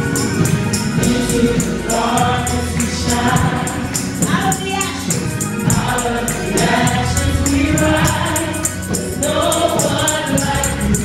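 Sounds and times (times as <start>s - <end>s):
gospel group singing: 0.0s - 11.0s
high percussion ticking: 0.0s - 11.0s
musical accompaniment: 0.0s - 11.0s.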